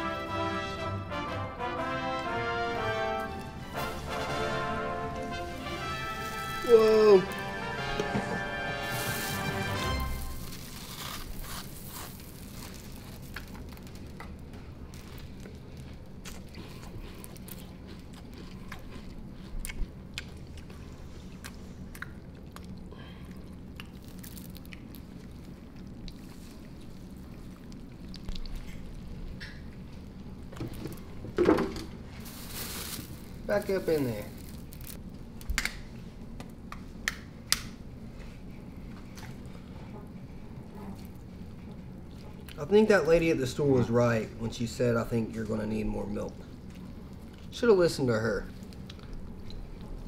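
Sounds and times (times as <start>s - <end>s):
cereal crackling: 3.8s - 8.0s, 8.8s - 19.3s, 23.8s - 29.0s, 32.0s - 35.2s.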